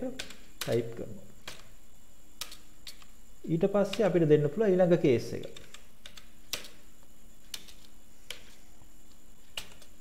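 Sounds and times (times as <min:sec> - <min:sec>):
person speaking: 0:00.0 - 0:01.6, 0:03.4 - 0:05.8
keyboard keystrokes clicking: 0:00.2 - 0:01.7, 0:02.4 - 0:03.1, 0:05.5 - 0:06.8, 0:09.5 - 0:09.9.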